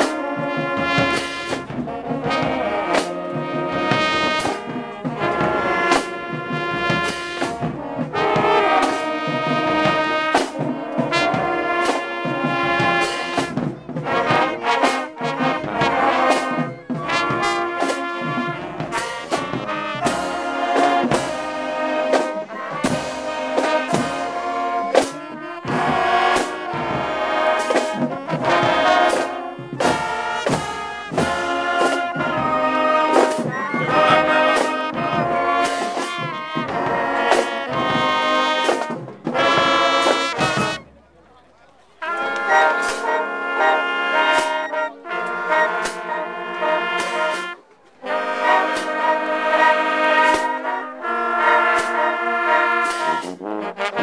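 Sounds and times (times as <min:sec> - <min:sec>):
drums and cymbals beat: 0:00.0 - 0:41.0, 0:42.0 - 0:54.0
marching band playing: 0:00.0 - 0:54.0.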